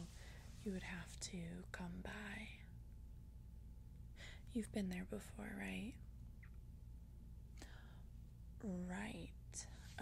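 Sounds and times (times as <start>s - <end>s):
woman speaking softly: 0.0s - 2.7s, 4.5s - 6.0s, 8.6s - 10.0s
faint low room hum: 0.0s - 10.0s.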